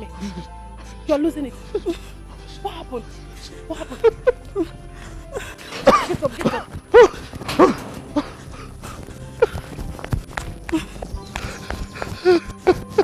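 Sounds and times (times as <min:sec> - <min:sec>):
person sobbing and wailing: 0:00.0 - 0:00.6, 0:01.6 - 0:09.8, 0:12.0 - 0:13.0
faint background music: 0:00.0 - 0:13.0.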